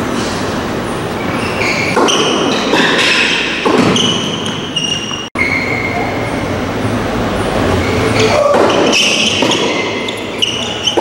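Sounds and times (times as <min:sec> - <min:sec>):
steady hall noise: 0:00.0 - 0:11.0
shoes squeaking on indoor court: 0:00.2 - 0:06.6, 0:07.4 - 0:11.0
racket hitting ball: 0:01.9 - 0:04.6, 0:08.1 - 0:10.1.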